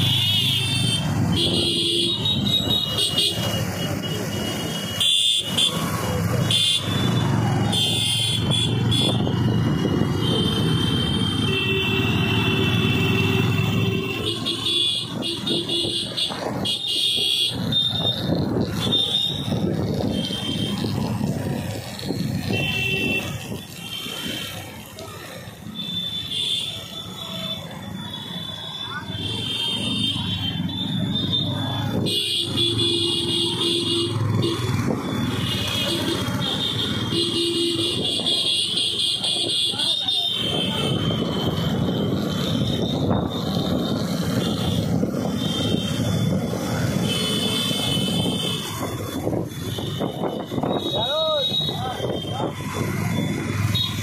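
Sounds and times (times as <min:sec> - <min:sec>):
motorcycle engine: 0:00.0 - 0:51.0, 0:51.6 - 0:54.0
road rumble: 0:00.0 - 0:54.0.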